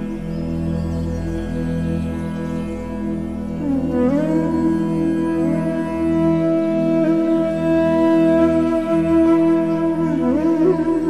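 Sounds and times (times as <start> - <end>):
flute sliding notes: 3.6 - 11.0.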